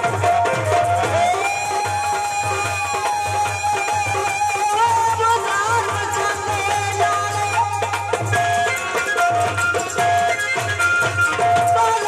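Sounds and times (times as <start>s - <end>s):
steady drum rhythm: 0.0s - 12.0s.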